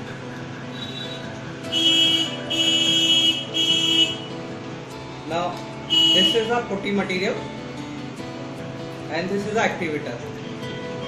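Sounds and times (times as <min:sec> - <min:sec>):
horn blasts: 0:00.8 - 0:04.3, 0:05.9 - 0:06.6.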